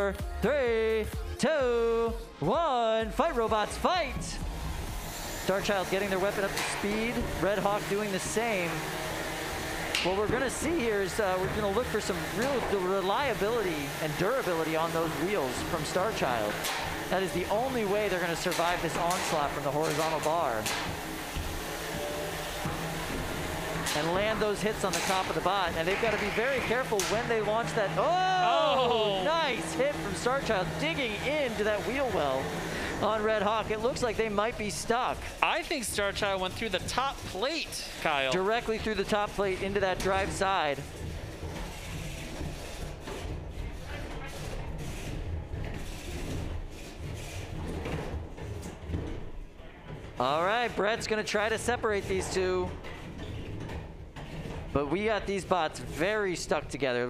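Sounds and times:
robots rattling and scraping: 29.6 - 57.0.

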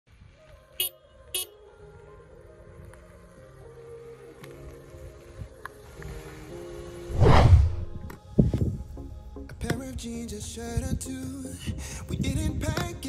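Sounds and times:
quiet background music: 0.2 - 13.0.

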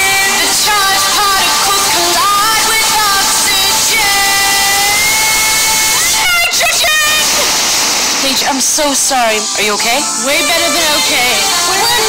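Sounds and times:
woman singing high notes: 0.0 - 7.2, 9.6 - 12.0
bright hissy backing music: 0.0 - 12.0.

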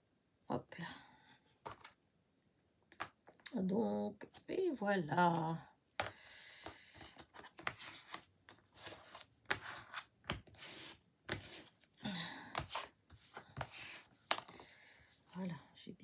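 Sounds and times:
paper rustling and scraping: 6.8 - 11.9.

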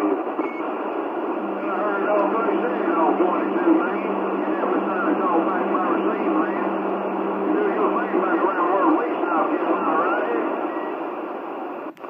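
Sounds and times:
radio static: 0.0 - 12.0
low steady tone: 1.1 - 8.5
voice through radio speaker: 1.2 - 11.0.

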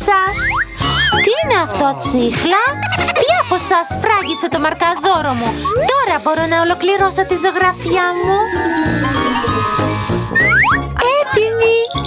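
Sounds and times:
upbeat children's music: 0.0 - 12.0
cartoon rising zips: 5.3 - 10.8
cartoon falling glide: 7.5 - 10.8.

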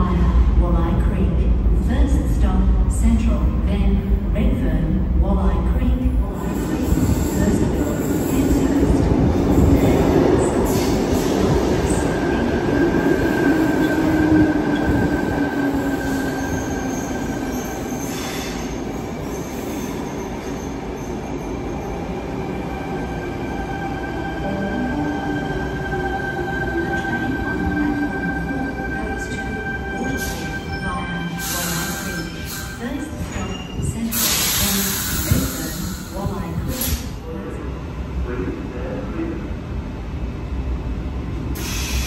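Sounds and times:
train rumbling: 0.0 - 42.0
train wheel squeal: 15.7 - 21.9.

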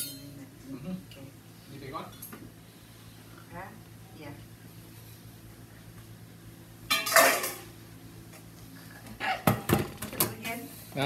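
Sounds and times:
metal dish cover clinking: 6.9 - 7.6.

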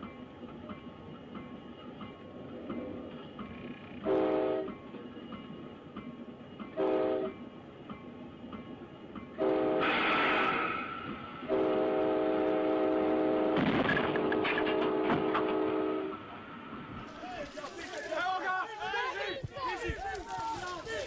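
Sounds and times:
train running rumble: 0.0 - 18.8
locomotive air horn blasts: 4.0 - 4.7, 6.8 - 7.4, 9.4 - 16.3.

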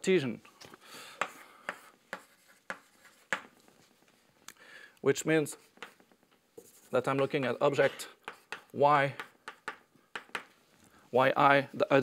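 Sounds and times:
chalk tapping on blackboard: 1.2 - 3.9, 5.6 - 7.5, 8.2 - 10.6
chalk scratching: 1.2 - 4.1, 5.4 - 10.5.

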